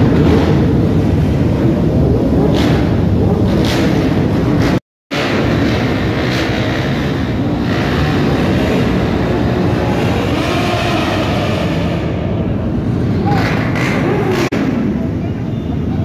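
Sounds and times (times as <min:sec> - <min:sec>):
motorcycle engines revving high: 0:00.0 - 0:16.0.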